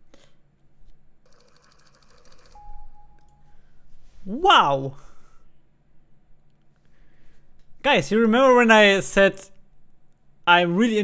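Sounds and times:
steady beep: 2.6s - 3.5s.

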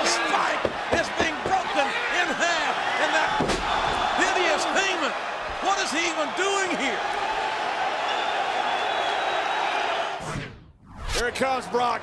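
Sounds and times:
arena crowd noise: 0.0s - 10.2s, 11.2s - 12.0s.

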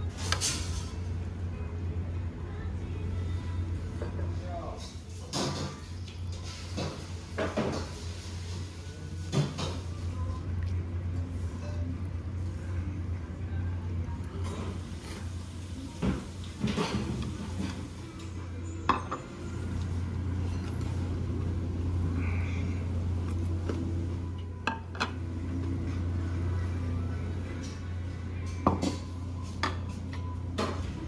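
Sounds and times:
steady low hum: 17.2s - 31.0s.

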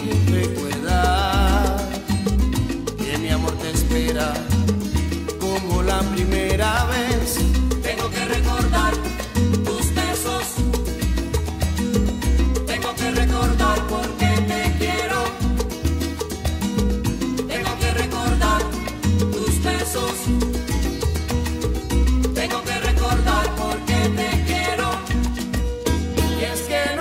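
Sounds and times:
instrumental salsa music: 0.0s - 27.0s.

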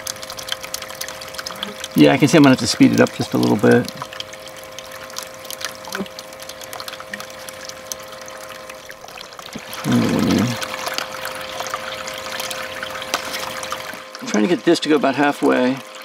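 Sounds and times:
water pump humming: 0.0s - 16.0s
water running down a sluice: 0.0s - 16.0s.

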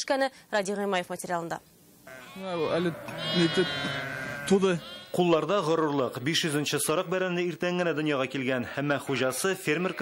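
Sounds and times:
sheep bleating: 2.0s - 5.4s
man's voice: 4.5s - 10.0s.

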